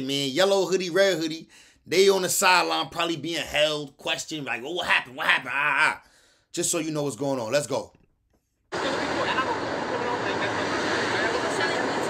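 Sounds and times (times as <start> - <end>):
people talking: 0.0 - 6.0, 8.8 - 12.0
steady traffic noise: 8.7 - 12.0.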